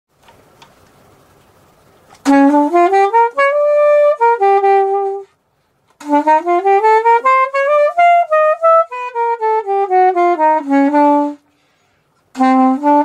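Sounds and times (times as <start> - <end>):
room hiss: 0.1 - 13.0
soprano saxophone phrase: 2.2 - 5.3, 6.0 - 11.5, 12.4 - 13.0.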